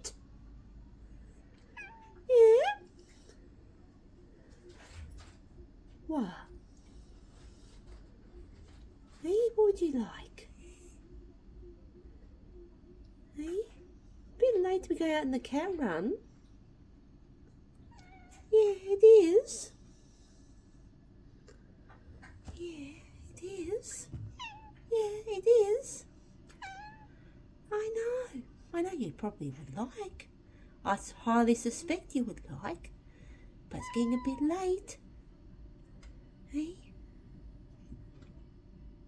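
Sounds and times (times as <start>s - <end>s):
cat meowing: 1.8s - 2.8s, 17.9s - 18.4s, 24.4s - 24.8s, 26.6s - 27.1s, 33.8s - 34.5s
cat meowing quietly: 26.6s - 27.1s.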